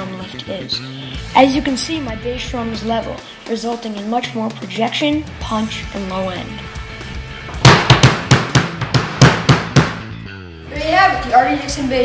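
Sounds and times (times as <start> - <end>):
bass drum thumps: 6.8 - 10.3
drum kit hits: 7.4 - 10.2.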